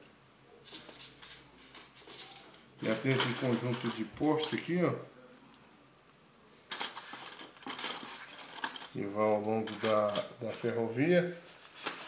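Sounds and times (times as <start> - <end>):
plastic pieces rattling and clicking: 2.8 - 4.7, 6.7 - 9.0, 9.6 - 10.7.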